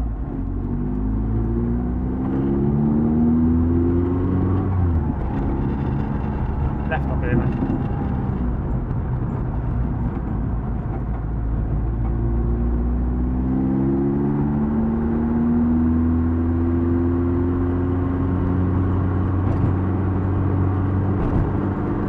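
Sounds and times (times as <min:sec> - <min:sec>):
car engine from inside cabin: 0:00.0 - 0:22.0.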